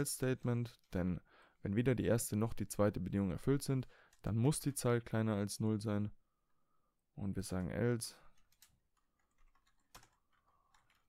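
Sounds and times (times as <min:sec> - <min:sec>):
faint keyboard typing: 0:08.3 - 0:11.0.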